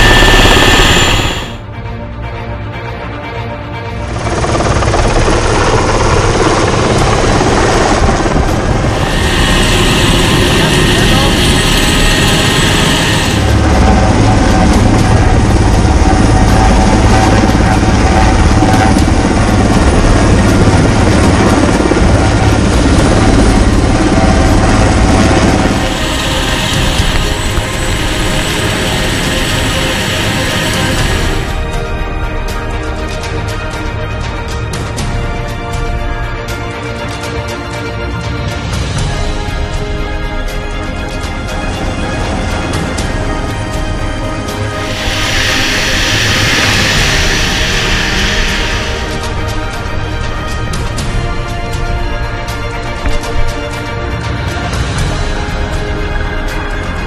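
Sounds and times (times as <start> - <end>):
helicopter rotor and turbine noise: 0.0 - 57.0.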